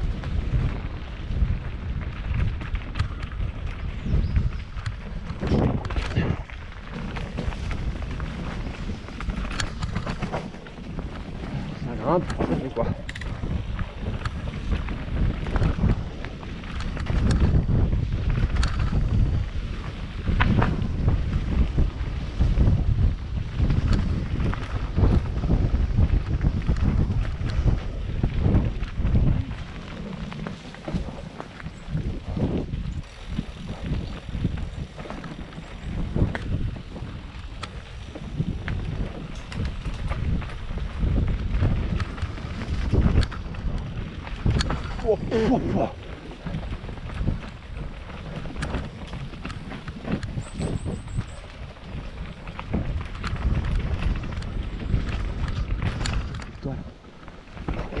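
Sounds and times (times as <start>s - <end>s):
bike knocking and rattling: 0.0s - 58.0s
tyres rolling over dirt: 0.0s - 58.0s
wind rushing over microphone: 0.0s - 58.0s
person calling out: 45.0s - 46.0s.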